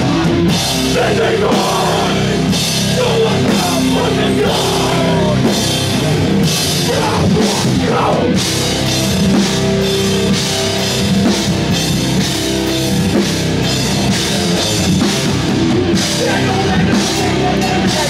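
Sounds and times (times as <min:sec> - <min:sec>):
distorted guitar: 0:00.0 - 0:18.0
drum kit: 0:00.0 - 0:18.0
heavy rock band playing live: 0:00.0 - 0:18.0.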